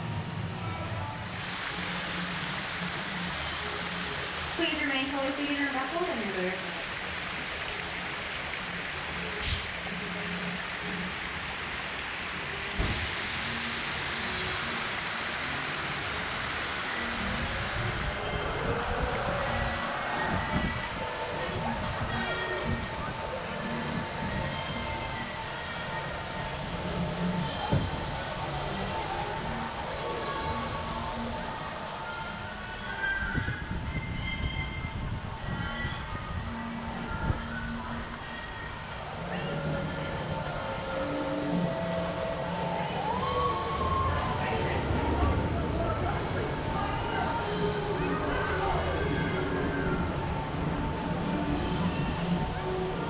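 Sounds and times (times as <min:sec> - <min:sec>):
fountain jets splashing into pool: 0:00.0 - 0:32.8
ride music playing: 0:00.0 - 0:53.0
ride vehicle rumbling: 0:00.0 - 0:53.0
thump: 0:12.8 - 0:13.0.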